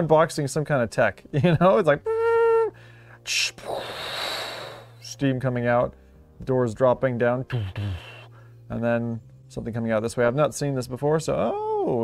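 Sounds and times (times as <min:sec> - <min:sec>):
breathy hiss imitating steam: 0:03.6 - 0:05.1, 0:07.5 - 0:08.3
man vocalizing ooh tone: 0:07.5 - 0:08.3.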